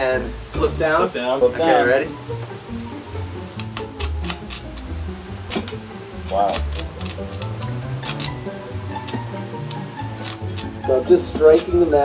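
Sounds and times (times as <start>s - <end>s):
background music: 0.0s - 12.0s
welding electrode crackles: 3.6s - 4.9s, 5.5s - 11.9s.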